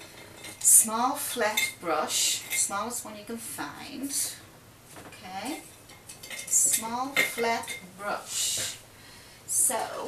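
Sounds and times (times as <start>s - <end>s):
person speaking: 6.5s - 8.8s.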